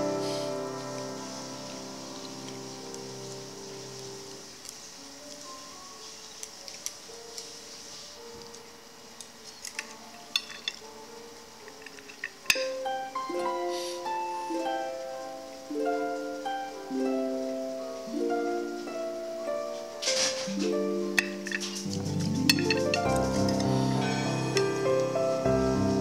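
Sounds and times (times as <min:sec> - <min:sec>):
soft background music: 0:00.0 - 0:26.0
utensils clinking on ceramic plate: 0:09.8 - 0:10.9, 0:11.7 - 0:12.8, 0:21.2 - 0:23.8.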